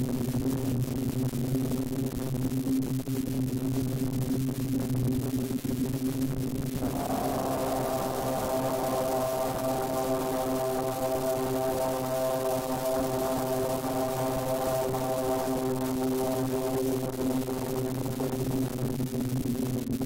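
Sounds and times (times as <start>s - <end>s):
low droning music: 6.8s - 17.8s.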